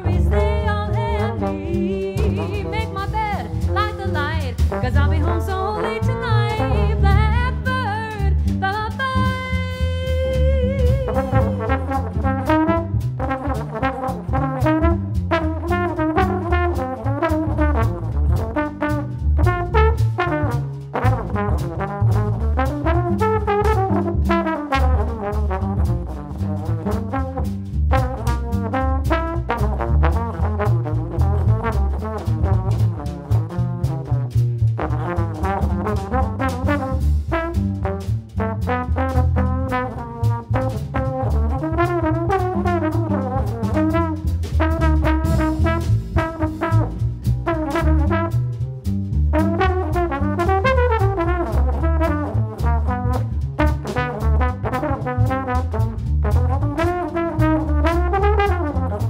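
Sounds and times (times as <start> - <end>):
drum kit with cymbals: 0.0 - 59.0
jazz trombone solo: 0.0 - 59.0
upright bass: 0.0 - 59.0.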